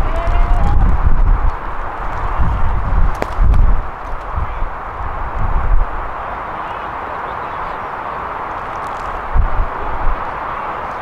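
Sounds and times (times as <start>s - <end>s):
outdoor hiss: 0.0s - 11.0s
wind buffeting microphone: 0.0s - 11.0s.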